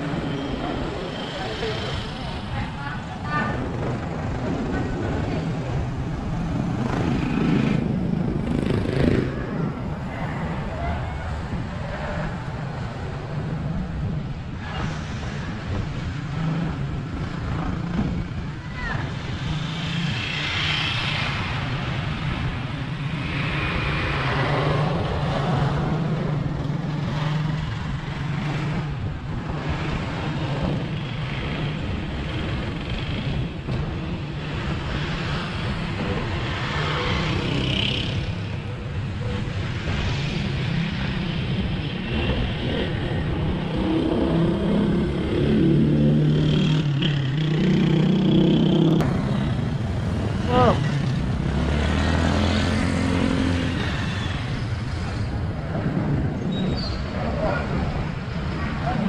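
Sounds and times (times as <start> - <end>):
motorbike and car engines passing: 0.0 - 14.2, 15.5 - 59.0
road rumble: 0.0 - 59.0
wind on microphone: 53.0 - 59.0.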